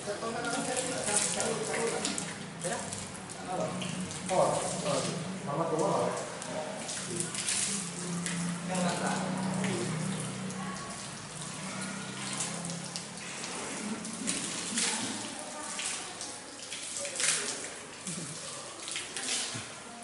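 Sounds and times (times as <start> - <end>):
water running from taps: 0.0 - 20.0
water splashing while washing: 0.0 - 20.0.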